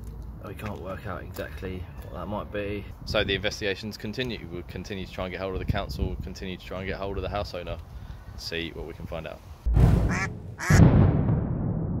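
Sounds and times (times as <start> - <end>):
deep boom: 9.7 - 12.0
duck quacks: 10.1 - 10.8.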